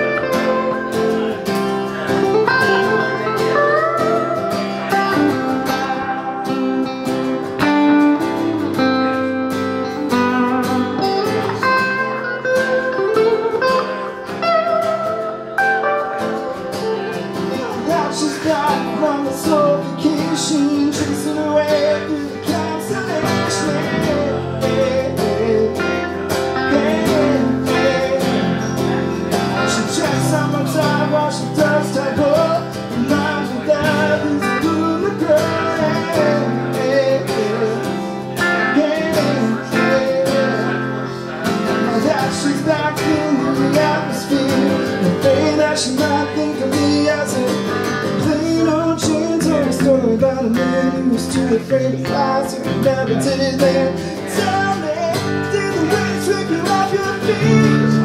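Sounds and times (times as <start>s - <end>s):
electric guitar lead lines: 0.0s - 58.0s
strummed acoustic guitar: 0.0s - 58.0s.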